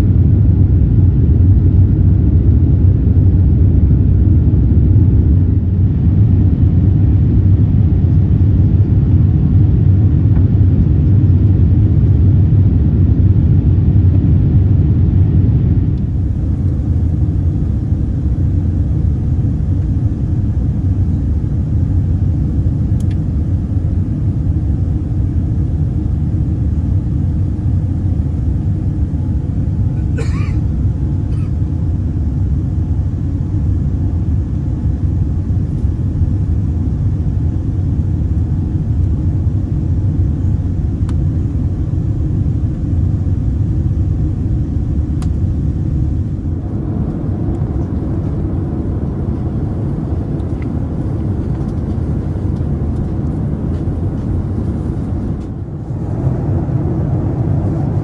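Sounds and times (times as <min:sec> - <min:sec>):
airplane cabin engine rumble: 0:00.0 - 0:58.0.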